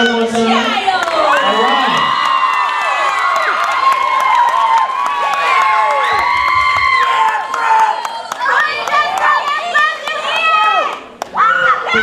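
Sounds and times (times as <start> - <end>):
audience cheering and screaming: 0.7 - 12.0
scattered clapping: 0.8 - 11.4.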